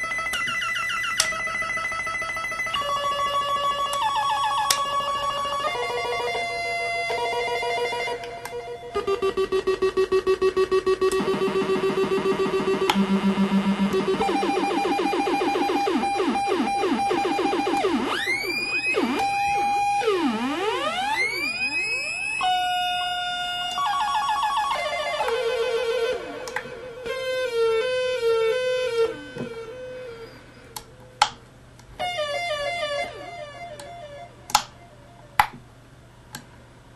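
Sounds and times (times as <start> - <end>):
electronic dub siren tones: 8.8 - 29.3.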